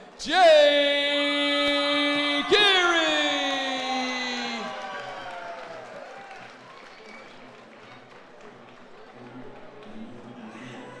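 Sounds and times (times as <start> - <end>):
audience clapping: 2.6 - 10.4
murmur of voices: 6.8 - 11.0.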